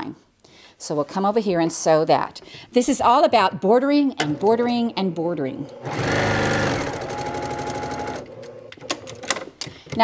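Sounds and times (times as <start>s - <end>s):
sewing machine stitching: 5.7s - 9.3s.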